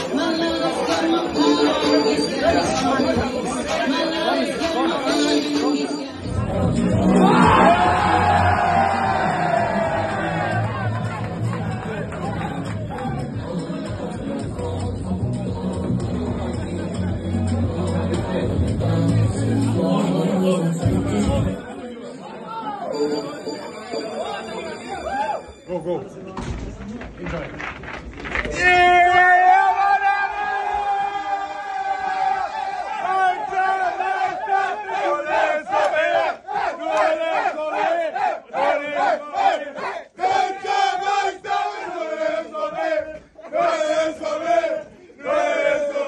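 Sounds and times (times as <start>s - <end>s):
loud music: 0.0s - 21.6s
group of people talking: 0.0s - 29.0s
people chattering: 0.0s - 30.7s.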